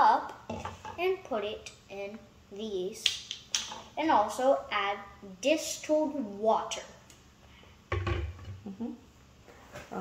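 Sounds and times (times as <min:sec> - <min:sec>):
plastic bottle thump on countertop: 0:07.9 - 0:08.5.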